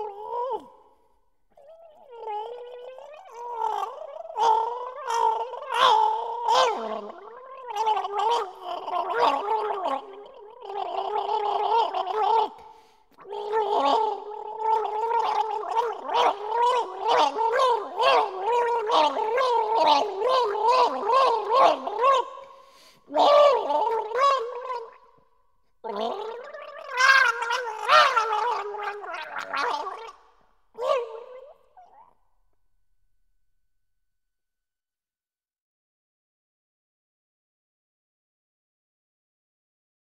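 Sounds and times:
person gargling musically: 0.0 - 0.8, 1.5 - 25.1, 25.8 - 30.2, 30.8 - 32.2.

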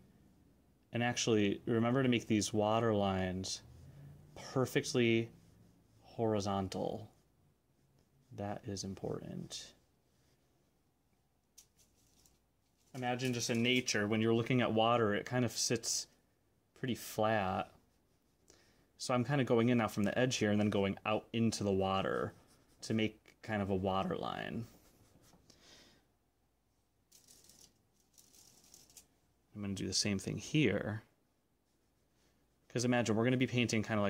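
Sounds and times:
paintbrush brushing paint: 1.9 - 16.2, 16.9 - 25.5, 27.1 - 29.2, 31.3 - 34.0
faint short rustles: 11.5 - 14.0.

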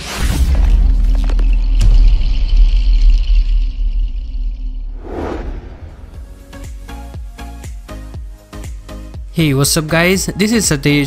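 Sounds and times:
deep bass rumble: 4.8 - 6.8.

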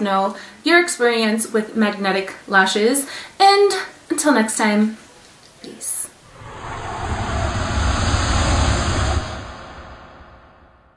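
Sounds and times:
whoosh over deep rumble: 6.2 - 10.9.

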